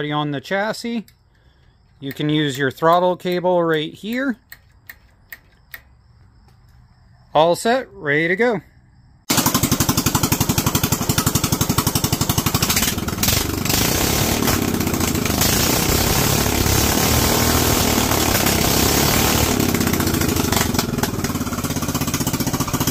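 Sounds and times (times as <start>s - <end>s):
single-cylinder engine running: 9.3s - 22.9s.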